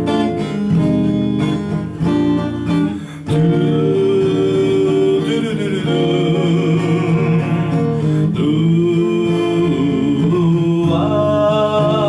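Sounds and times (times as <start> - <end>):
bolero electric guitar melody: 0.0 - 12.0
long held chords: 0.0 - 12.0.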